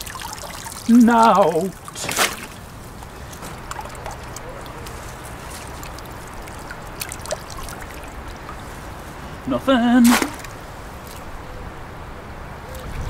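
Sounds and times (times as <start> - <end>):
trap splashing out of water: 0.0 - 8.6, 10.0 - 11.2
water trickling and dripping: 0.0 - 9.5.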